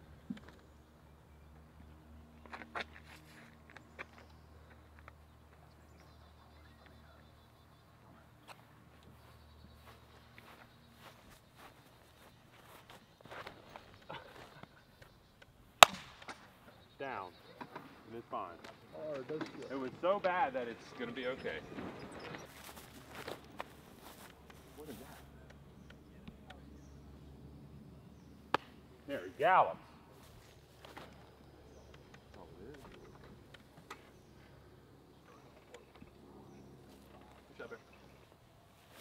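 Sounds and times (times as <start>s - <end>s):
sharp crack: 15.8s - 16.6s, 28.5s - 28.9s.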